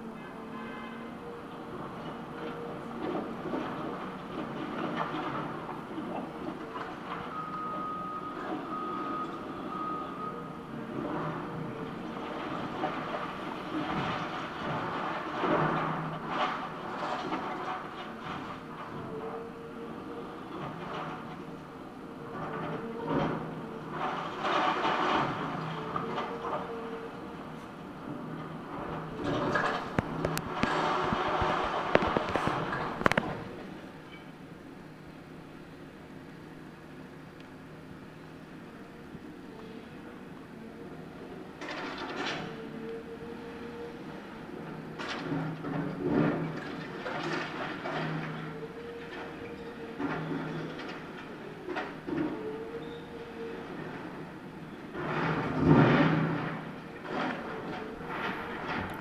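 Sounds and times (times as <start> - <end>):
excavator engine and hydraulics: 1.2 - 59.0
reversing alarm beeps: 7.3 - 10.6
debris crunching and clattering: 28.9 - 33.4.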